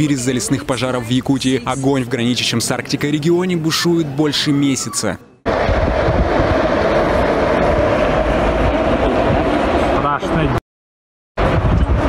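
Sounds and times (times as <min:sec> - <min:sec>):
forest fire rushing: 0:05.5 - 0:10.5
low rumble: 0:05.5 - 0:10.6.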